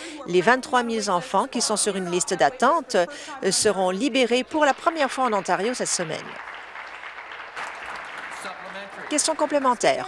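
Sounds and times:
people applauding: 0:04.5 - 0:10.0.

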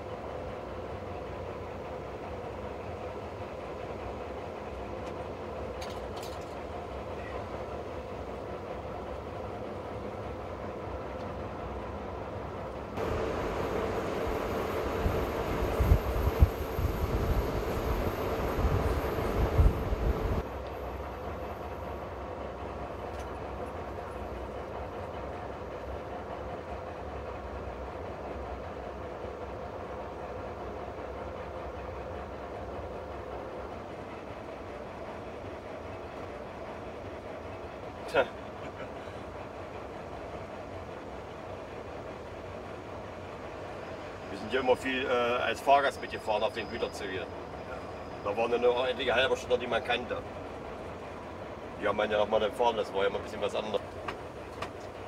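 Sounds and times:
diesel locomotive engine drone: 0:00.0 - 0:55.0
wheels knocking and rattling: 0:53.8 - 0:55.0.

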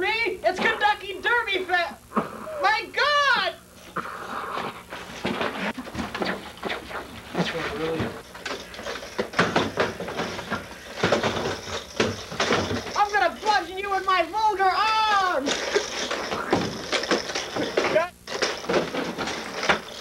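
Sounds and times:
rustling: 0:03.8 - 0:20.0
knocks and clatter: 0:04.9 - 0:14.2, 0:15.5 - 0:20.0.

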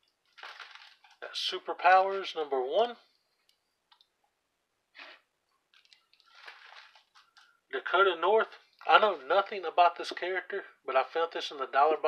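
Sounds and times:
plastic sleeve crinkling: 0:00.2 - 0:01.2, 0:05.7 - 0:07.5.

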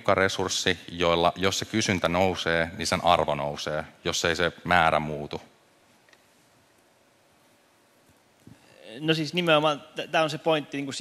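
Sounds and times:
man speaking: 0:00.0 - 0:05.5, 0:08.6 - 0:11.0.

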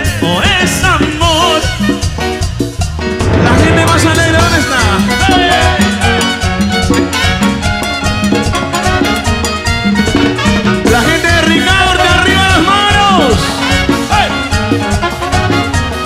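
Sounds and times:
salsa dance orchestra: 0:00.0 - 0:16.0.

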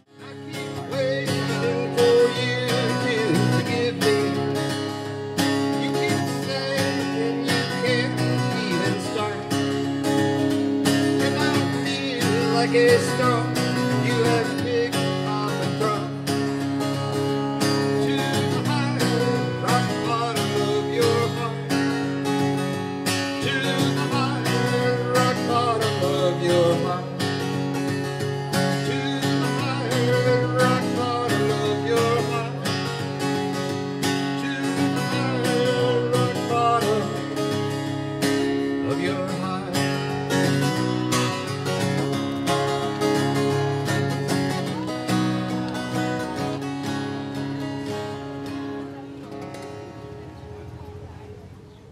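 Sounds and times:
acoustic guitar strumming: 0:00.0 - 0:51.3.

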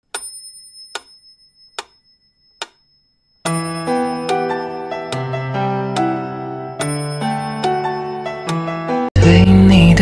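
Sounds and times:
faint high ringing tones: 0:00.1 - 0:05.1
background music: 0:03.5 - 0:10.0.

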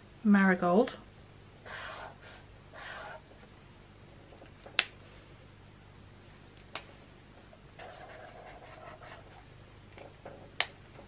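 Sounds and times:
marker scratching on paper: 0:01.6 - 0:03.4, 0:07.8 - 0:09.4.

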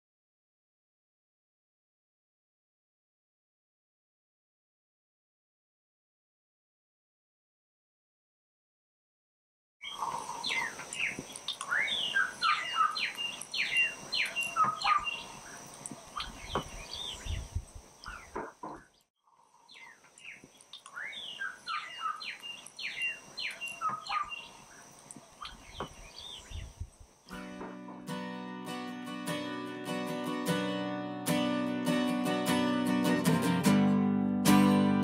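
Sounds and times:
birds chirping: 0:09.8 - 0:27.8.

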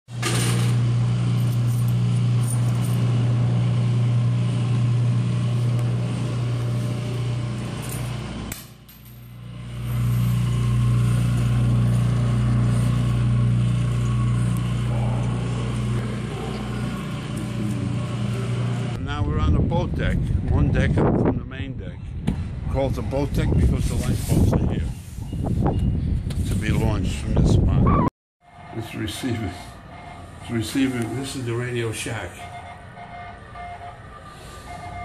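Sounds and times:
model steam engine humming: 0:09.5 - 0:19.0.

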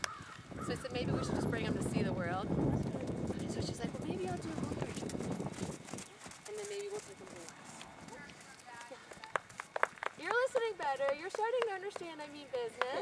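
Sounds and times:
horse hoofbeats on sand: 0:03.3 - 0:13.0.

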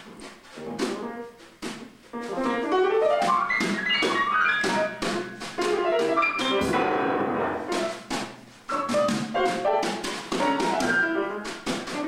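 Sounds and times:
piano notes and chords: 0:02.1 - 0:12.0.

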